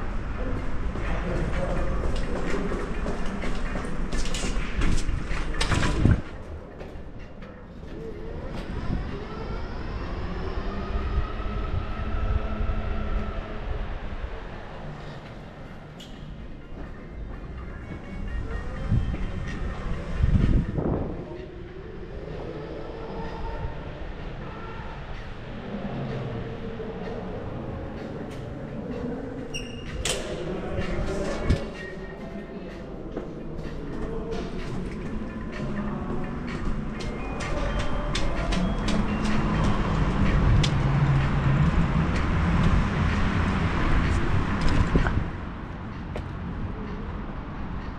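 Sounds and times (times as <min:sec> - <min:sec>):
electric scooter rumble: 0:33.4 - 0:47.9.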